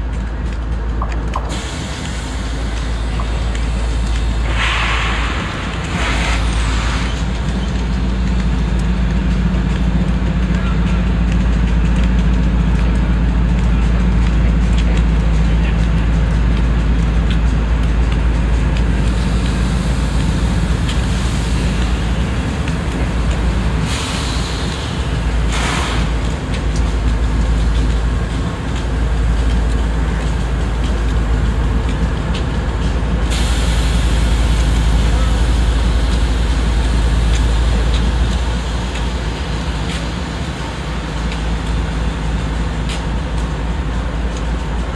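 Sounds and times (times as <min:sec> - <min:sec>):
diesel locomotive rumble: 0:00.0 - 0:44.9
bursts of hiss: 0:01.5 - 0:07.7, 0:19.0 - 0:28.0.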